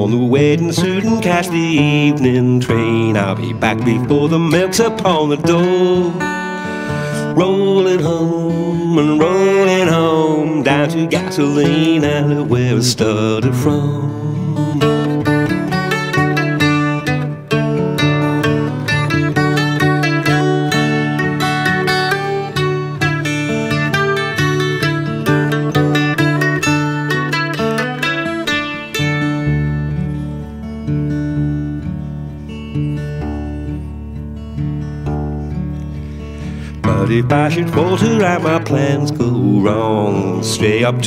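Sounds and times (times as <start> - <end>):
acoustic guitar picking: 0.0 - 41.0.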